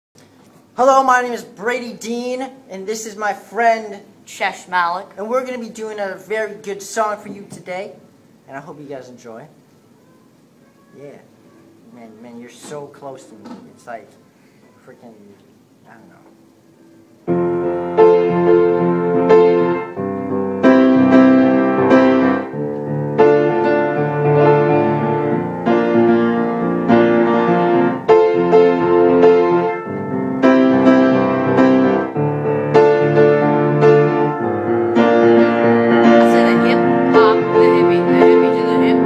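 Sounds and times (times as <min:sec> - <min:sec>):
piano playing block chords: 0:17.2 - 0:39.0.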